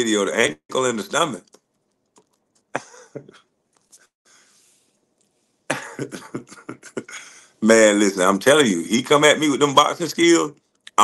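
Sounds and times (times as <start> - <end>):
man laughing: 2.7 - 3.4, 5.7 - 7.3
man coughing: 5.7 - 7.1.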